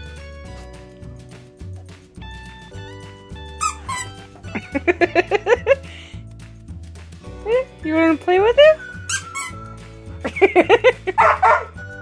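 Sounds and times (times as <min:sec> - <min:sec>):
background music: 0:00.0 - 0:12.0
squeaky dog toy squeaking: 0:03.4 - 0:04.4, 0:08.9 - 0:09.8.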